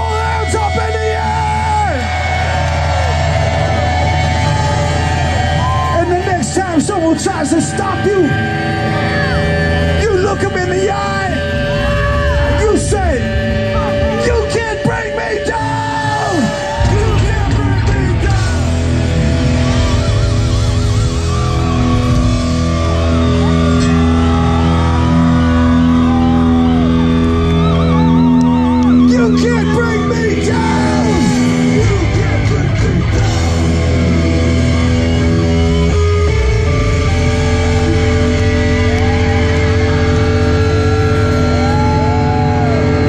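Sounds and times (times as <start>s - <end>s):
punk band with distorted guitars: 0.0s - 43.0s
sliding high guitar notes: 0.0s - 43.0s.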